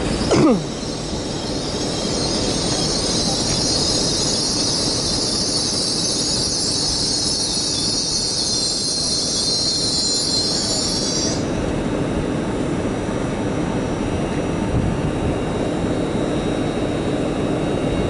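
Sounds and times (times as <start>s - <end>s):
high-pitched wheel squeal: 0.0s - 11.6s
train rumbling on track: 0.0s - 18.0s.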